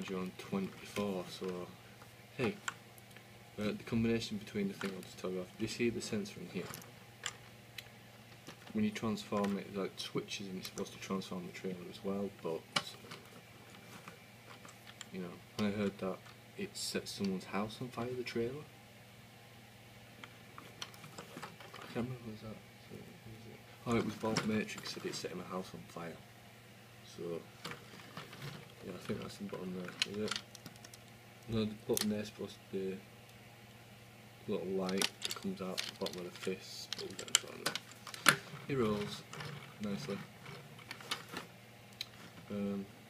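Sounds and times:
man speaking: 0.0s - 1.8s, 2.4s - 2.6s, 3.6s - 6.8s, 8.7s - 13.1s, 15.1s - 18.7s, 21.9s - 26.2s, 27.0s - 27.5s, 28.8s - 30.4s, 31.5s - 33.0s, 34.4s - 37.8s, 38.7s - 40.3s, 42.5s - 42.9s.

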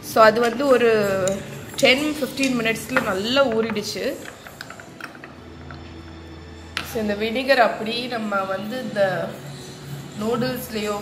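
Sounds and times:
spoon clinking in glass jar: 1.0s - 5.9s.

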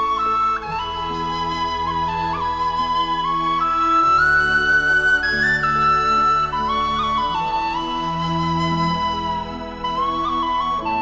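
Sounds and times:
slow flute melody: 0.0s - 11.0s
soft sustained chords: 0.0s - 11.0s.

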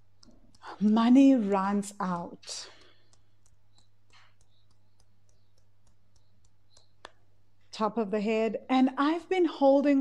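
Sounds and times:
fingers tapping clicks: 0.0s - 1.0s, 1.9s - 7.4s.

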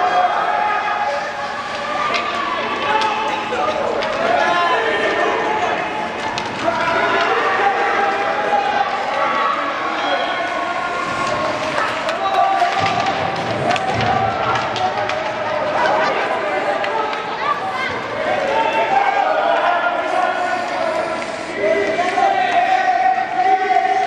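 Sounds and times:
spectators chatting and calling out: 0.0s - 24.0s
hockey sticks and puck clacking: 1.2s - 19.0s.

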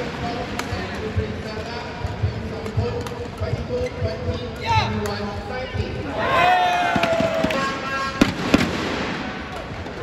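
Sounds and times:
arena background noise: 0.0s - 10.0s.

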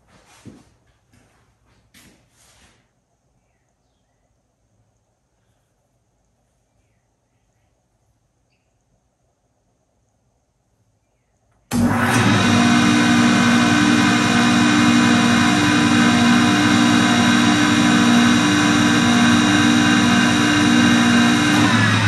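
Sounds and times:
jointer running: 11.7s - 22.0s.

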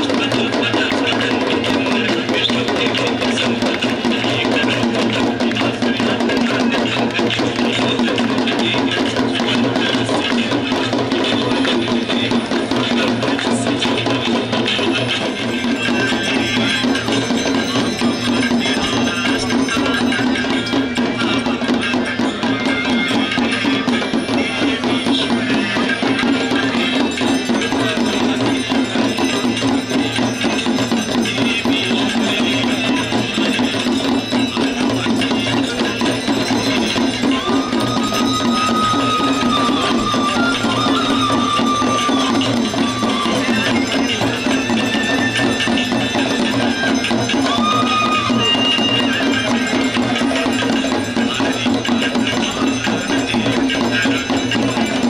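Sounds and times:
brass hand bell ringing: 0.0s - 55.0s
devotional music with drums: 0.0s - 55.0s.

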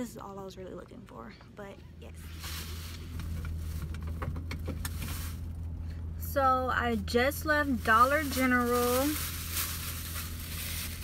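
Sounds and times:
car engine idling: 1.0s - 11.0s.

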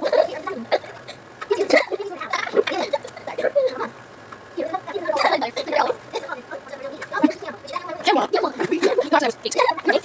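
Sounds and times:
garbled voices from television: 0.0s - 10.0s.

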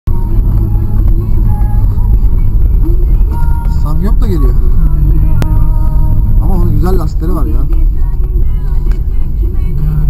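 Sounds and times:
car cabin low rumble: 0.1s - 10.0s
music playing: 0.1s - 10.0s.

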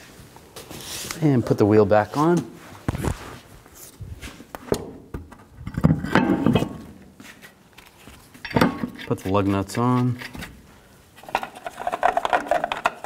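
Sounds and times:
metal knocks and scrapes: 5.6s - 6.9s.

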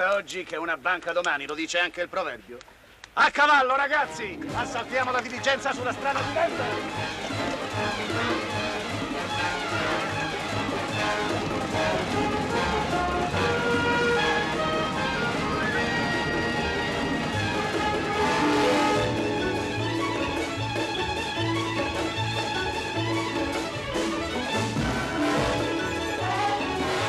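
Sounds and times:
orchestral strings music: 3.7s - 27.0s.

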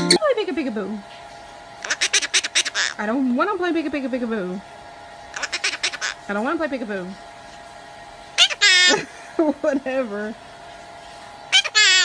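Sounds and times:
parrot squawking: 1.8s - 3.1s, 5.3s - 6.3s, 8.4s - 9.2s, 11.5s - 12.0s.

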